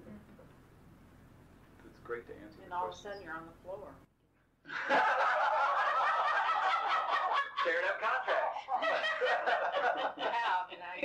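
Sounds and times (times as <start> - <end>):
group of people laughing: 4.7 - 11.0.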